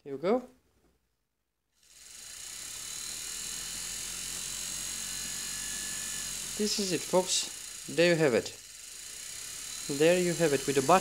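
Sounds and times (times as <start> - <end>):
electric motor whirring: 1.8 - 11.0.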